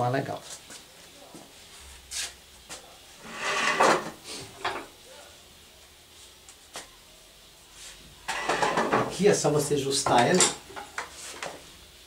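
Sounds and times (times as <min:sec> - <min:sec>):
objects knocking and scraping: 0:03.2 - 0:04.9, 0:08.3 - 0:09.2.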